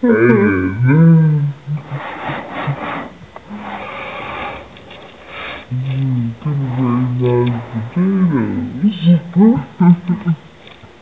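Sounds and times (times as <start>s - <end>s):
person speaking low: 0.0s - 4.6s, 5.6s - 10.5s
breathy hissy vocal noises: 0.0s - 11.0s.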